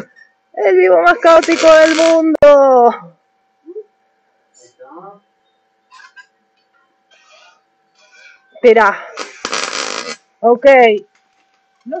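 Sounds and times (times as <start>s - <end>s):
short hiss: 9.1s - 10.2s.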